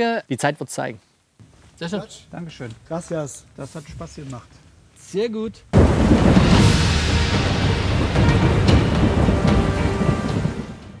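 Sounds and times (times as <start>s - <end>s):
rain: 1.8s - 11.0s
thunder rumbling and cracking: 5.8s - 11.0s.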